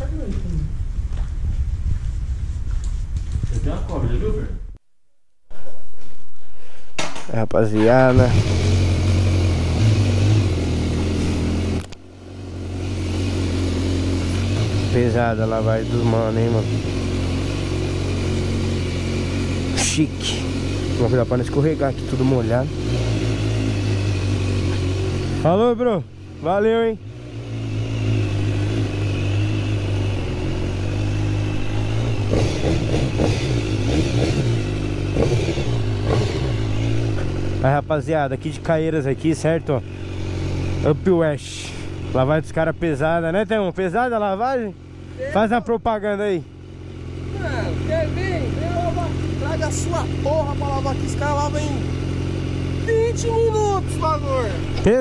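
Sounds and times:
motorcycle engine idling: 7.9s - 55.0s.

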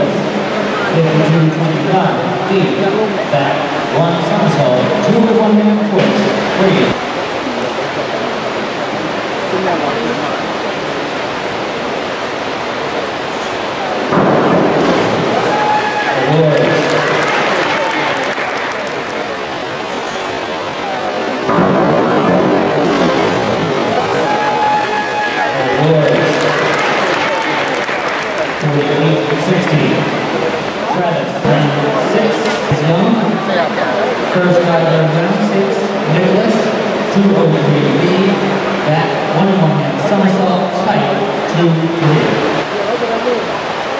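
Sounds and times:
echoing crowd noise: 0.0s - 43.9s
crowd cheering and shouting: 14.0s - 19.5s, 20.8s - 36.8s.

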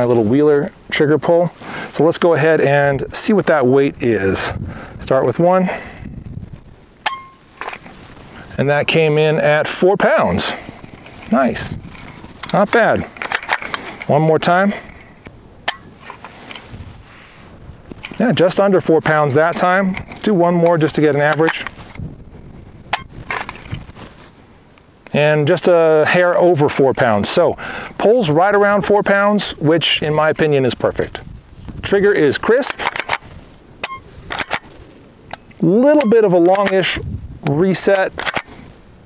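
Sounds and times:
handling rustle: 6.1s - 9.0s, 10.0s - 24.8s, 30.9s - 38.9s.

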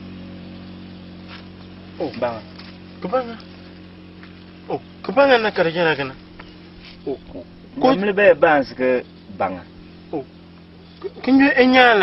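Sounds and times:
low hum of held tones: 0.0s - 12.0s.

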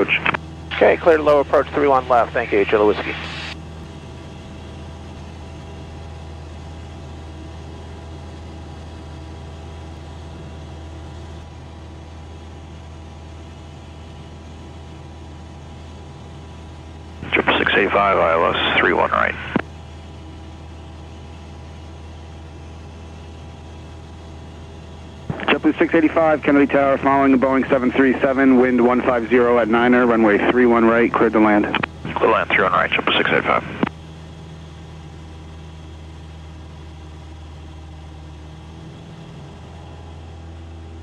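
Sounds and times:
voice-like burst: 0.0s - 3.6s, 17.2s - 19.6s, 25.3s - 33.8s
propeller aircraft engine drone: 0.0s - 41.0s.

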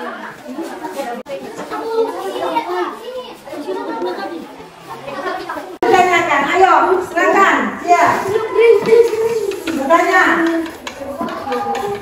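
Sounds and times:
children's voices chattering: 0.0s - 12.0s.

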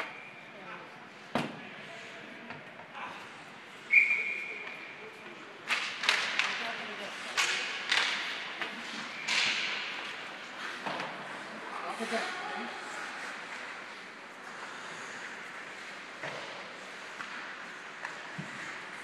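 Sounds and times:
hockey sticks and puck clacking: 3.9s - 19.0s
skate blades scraping ice: 7.0s - 19.0s.

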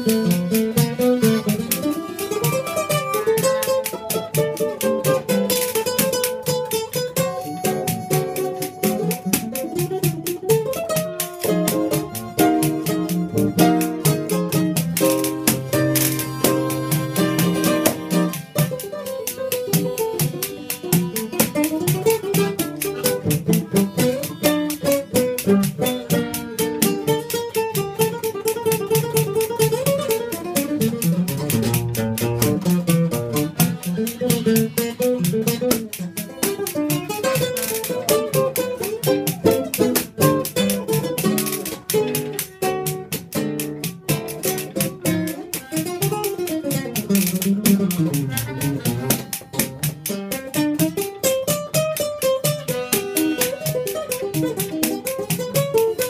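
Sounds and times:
harmonica melody: 0.0s - 50.4s, 51.7s - 55.7s
acoustic guitar accompaniment: 0.0s - 56.0s.

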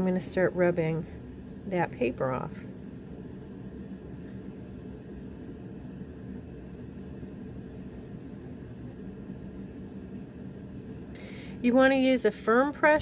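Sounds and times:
low room tone hum: 0.0s - 13.0s.

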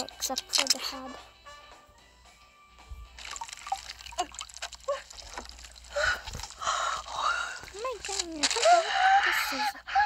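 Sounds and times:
liquid dripping: 0.0s - 0.8s, 3.1s - 8.6s
soft background music: 0.0s - 10.0s
plastic bag rustling: 3.2s - 8.8s.

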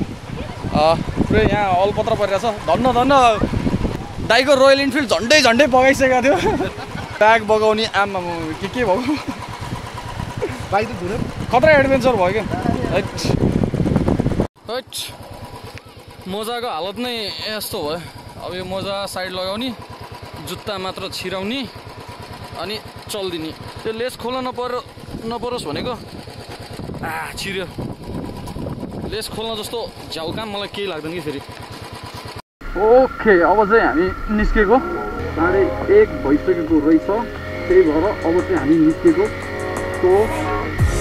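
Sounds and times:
motorcycle engine running: 0.0s - 41.0s
man talking: 32.7s - 39.3s.

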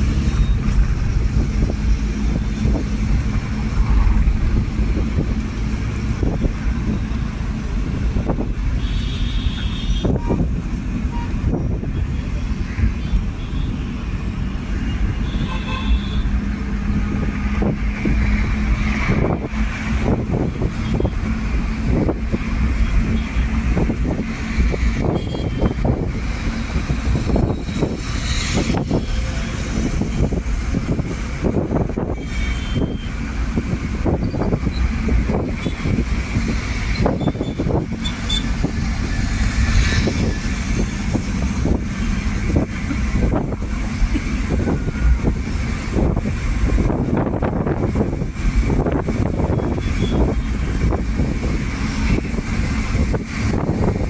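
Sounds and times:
wind buffeting microphone: 0.0s - 8.7s, 16.5s - 32.4s, 33.1s - 54.0s
engine and road rumble: 0.0s - 54.0s.

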